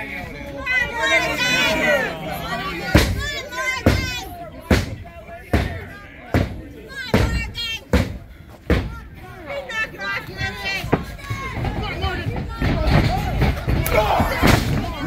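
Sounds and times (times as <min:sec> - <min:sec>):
voices shouting: 0:00.0 - 0:15.0.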